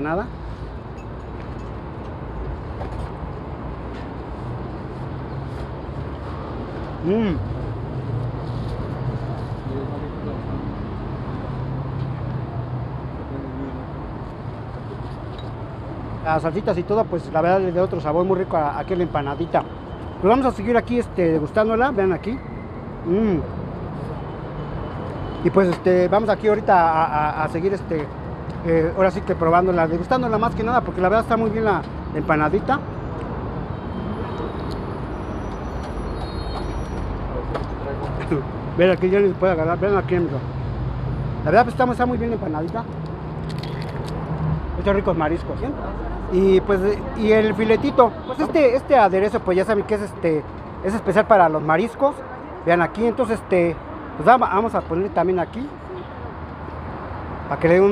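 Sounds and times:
street traffic: 0.0 - 57.9.

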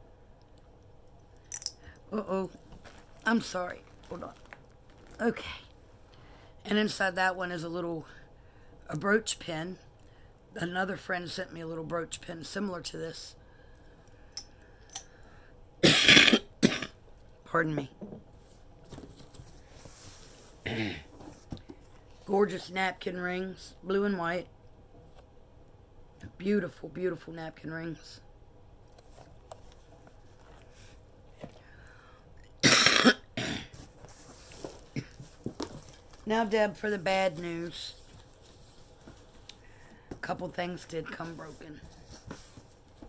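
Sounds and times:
woman coughing: 15.8 - 17.0, 20.6 - 21.1, 32.6 - 33.8.

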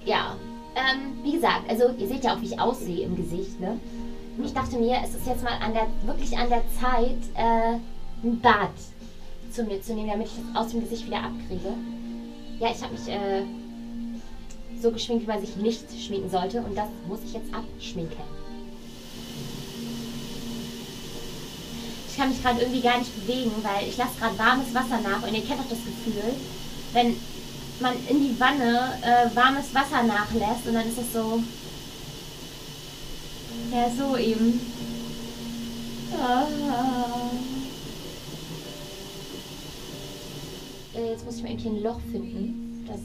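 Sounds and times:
soft background music: 0.0 - 43.0
tap water pouring into tub: 18.8 - 41.0.

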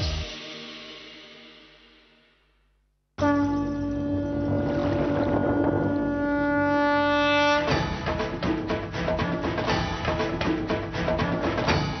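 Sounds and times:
conch shell blown: 3.2 - 7.9.

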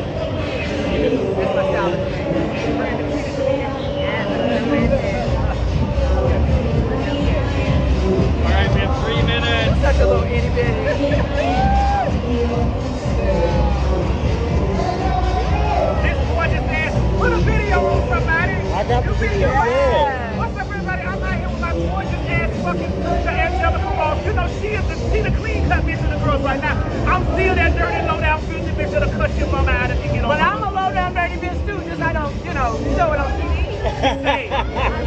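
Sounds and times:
street chatter: 0.0 - 35.0.

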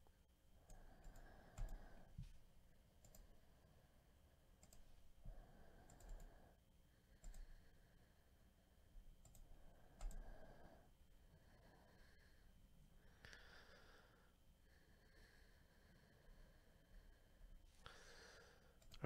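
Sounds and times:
faint mouse and key clicks: 0.6 - 2.4, 3.0 - 3.4, 4.6 - 5.0, 5.7 - 6.5, 7.2 - 7.6, 9.2 - 10.4, 18.8 - 19.0.

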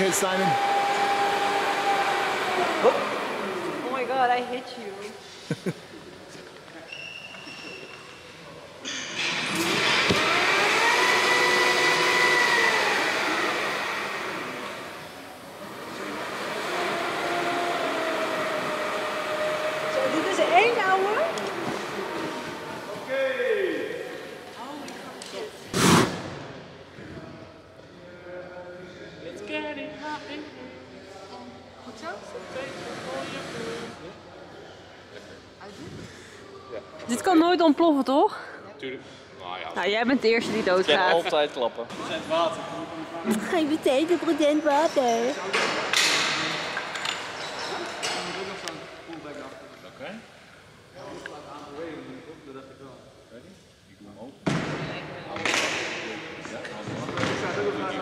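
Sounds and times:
motorised winch whine: 0.0 - 4.1, 9.5 - 23.1.

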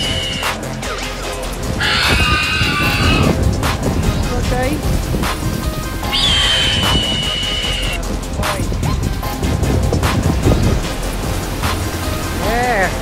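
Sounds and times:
background music with beat: 0.0 - 13.0
steady low rumble: 0.0 - 13.0.

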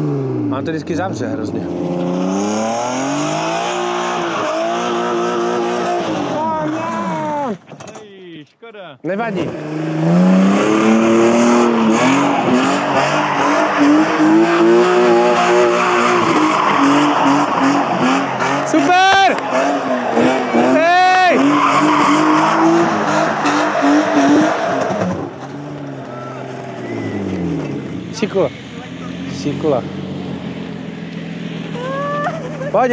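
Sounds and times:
car engine at high revs: 0.0 - 7.6, 9.2 - 32.9
tyres skidding on asphalt: 0.0 - 8.0, 9.3 - 32.9
high tyre squeals: 2.0 - 7.7, 9.5 - 32.9.

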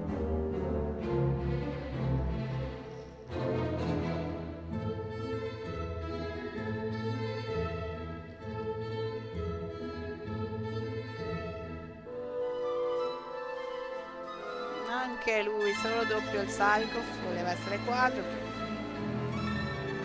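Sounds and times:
orchestral string music: 0.0 - 20.0.

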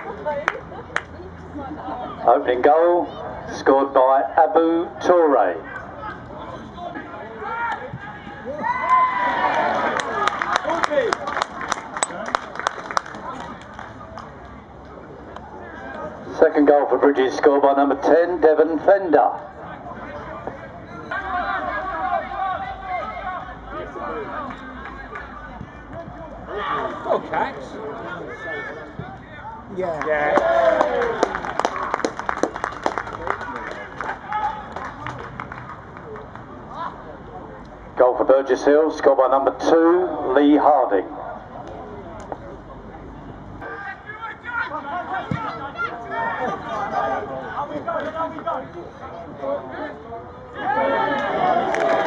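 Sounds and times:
voices calling and chattering: 0.0 - 52.0
people shouting: 21.1 - 24.5, 26.5 - 27.2
overlapping voices calling: 30.0 - 36.7.

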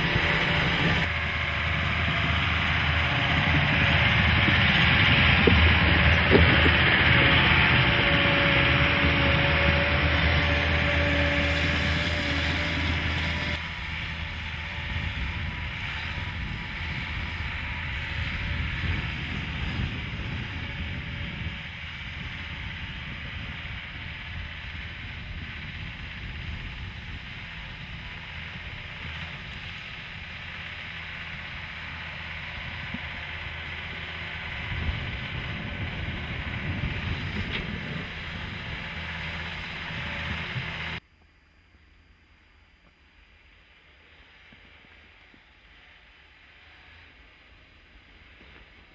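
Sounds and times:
wind on microphone: 0.0 - 29.8, 34.4 - 41.0
tracked vehicle engine: 0.0 - 41.1, 42.7 - 48.9.

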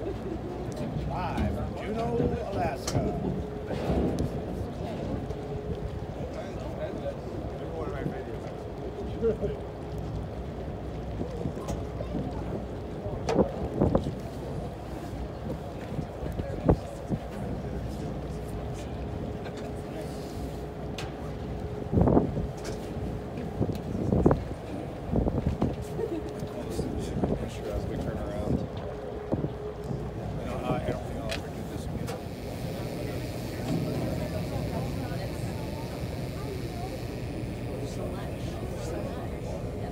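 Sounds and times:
boat engine rumble: 0.0 - 39.9
wind noise on microphone: 21.9 - 22.8, 23.4 - 25.9
people talking indistinctly: 25.8 - 39.9
boat engine running: 28.9 - 39.9.

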